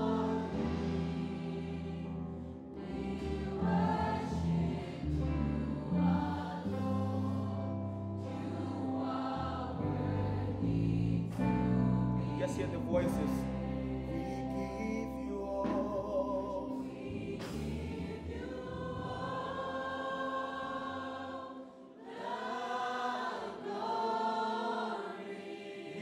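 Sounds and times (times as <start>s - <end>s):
musical accompaniment: 0.0s - 22.4s
choir singing: 0.0s - 26.0s
man singing into a microphone: 14.1s - 16.8s.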